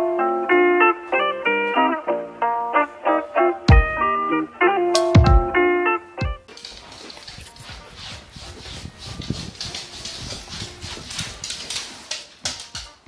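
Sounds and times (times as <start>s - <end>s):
tapping on hardwood floor: 9.2s - 13.0s.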